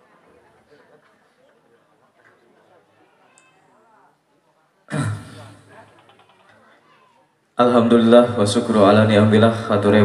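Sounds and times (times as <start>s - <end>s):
faint voices: 0.0s - 7.8s.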